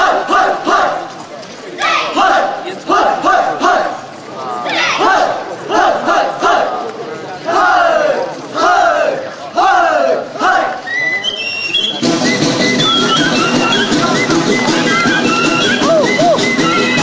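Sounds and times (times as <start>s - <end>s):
group shouting in rhythm: 0.0s - 1.0s, 1.8s - 3.9s, 4.7s - 6.7s.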